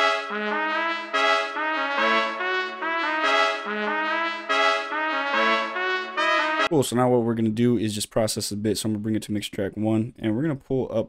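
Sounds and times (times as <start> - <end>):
trumpet playing chords: 0.0 - 6.8.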